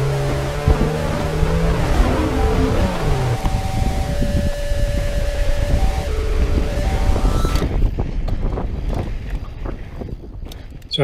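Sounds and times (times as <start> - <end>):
tyres rumbling on dirt: 0.0 - 3.5
wind buffeting microphone: 0.0 - 11.0.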